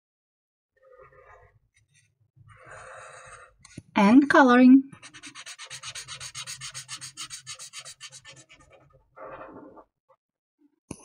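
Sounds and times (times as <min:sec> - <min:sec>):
marker scribbling on paper: 0:04.9 - 0:09.5.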